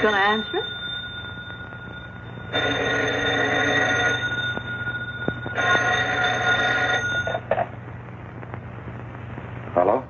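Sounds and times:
telephone bell ringing: 0.0 - 7.5.

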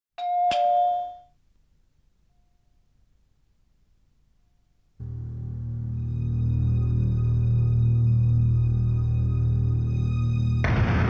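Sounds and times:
two-note doorbell chime: 0.2 - 1.4.

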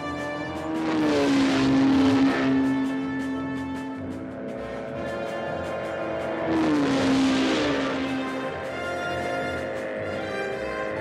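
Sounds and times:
aircraft engine buzzing: 0.0 - 11.0
orchestral film score: 0.0 - 11.0
rush of noise: 0.6 - 10.0.

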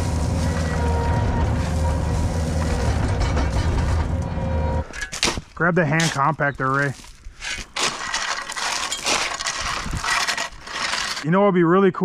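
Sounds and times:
steel tools scraping gravelly soil: 0.0 - 3.7, 4.8 - 11.4.

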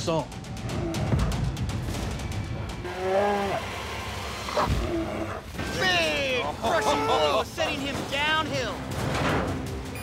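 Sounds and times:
background music: 0.0 - 10.0
bear growling: 0.6 - 1.4, 2.8 - 5.7.

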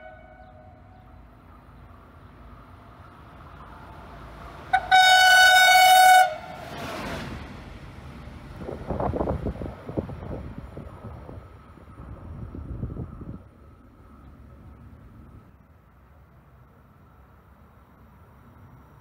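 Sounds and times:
train horn: 0.0 - 0.9, 4.7 - 6.6
train passing with rush: 0.0 - 19.0.

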